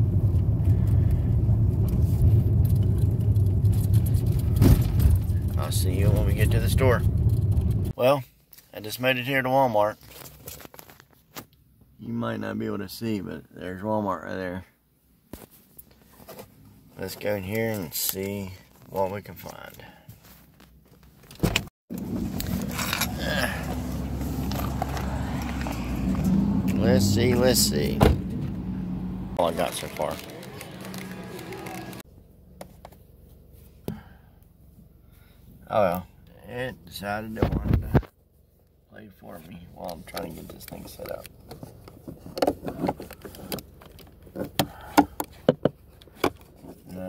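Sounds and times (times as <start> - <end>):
car engine running: 21.9 - 35.6.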